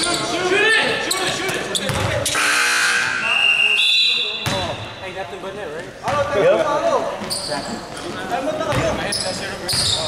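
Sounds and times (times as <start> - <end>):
sneakers squeaking on gym floor: 0.0 - 2.4, 7.2 - 10.0
basketball thud: 4.4 - 4.8.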